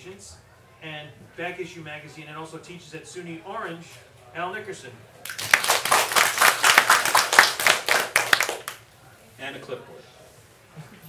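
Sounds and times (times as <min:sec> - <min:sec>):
audience clapping: 0:05.2 - 0:08.8.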